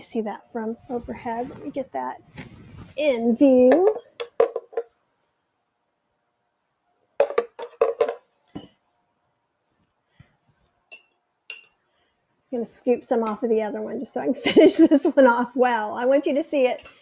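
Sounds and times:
glass and spoon clinking: 10.9 - 11.8, 16.8 - 17.0.

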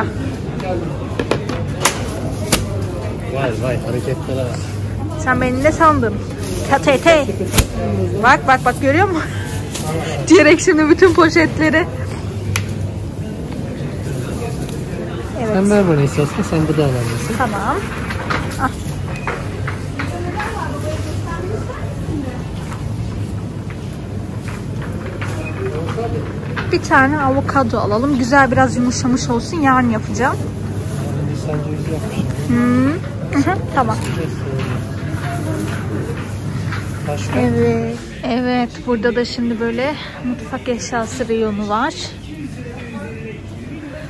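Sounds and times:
stroller rolling on tiled floor: 0.0 - 44.0.

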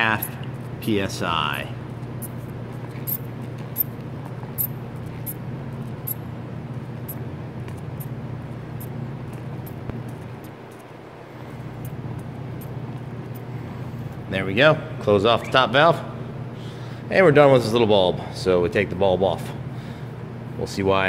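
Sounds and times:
low machine hum: 0.0 - 21.0.

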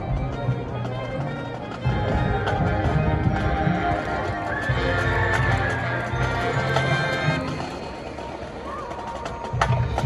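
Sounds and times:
clip-clop hoofbeat rhythm: 0.0 - 7.8, 9.1 - 10.0
marching band playing: 0.0 - 10.0.

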